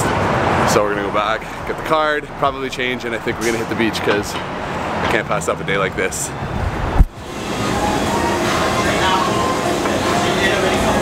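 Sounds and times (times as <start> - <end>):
indistinct voices: 7.3 - 11.0.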